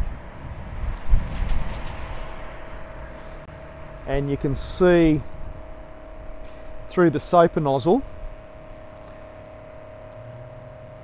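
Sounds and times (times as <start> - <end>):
diaphragm pump whining: 2.2 - 11.0.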